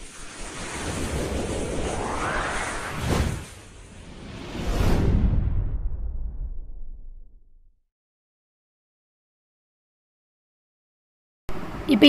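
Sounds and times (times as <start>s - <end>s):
whooshing swell: 0.0s - 7.2s
rising sweep: 0.0s - 7.5s.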